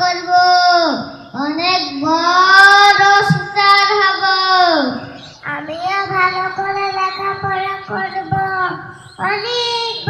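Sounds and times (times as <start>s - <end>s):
child chanting into microphone: 0.0s - 10.0s.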